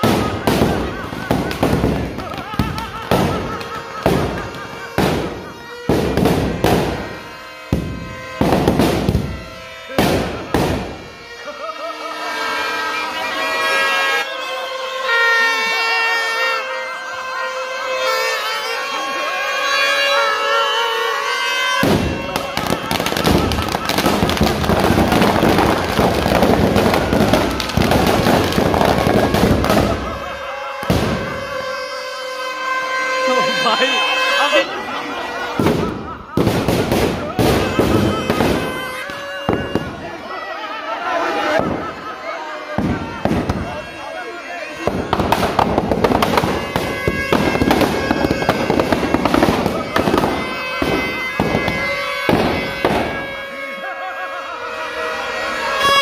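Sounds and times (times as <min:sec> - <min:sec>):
firecrackers bursting: 0:00.0 - 0:11.5, 0:21.3 - 0:34.7, 0:35.3 - 0:40.3, 0:41.5 - 0:44.1, 0:44.7 - 0:53.8
crowd voices: 0:00.0 - 0:56.0.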